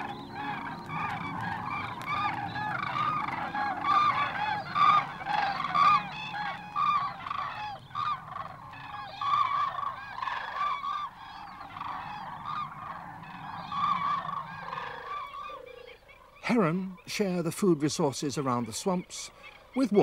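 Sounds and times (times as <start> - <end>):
flock of cranes calling: 0.0 - 20.0.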